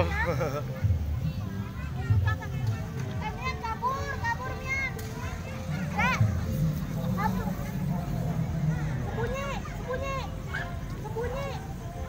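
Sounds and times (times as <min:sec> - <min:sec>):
background music: 0:00.0 - 0:12.0
children shouting and playing: 0:00.0 - 0:12.0.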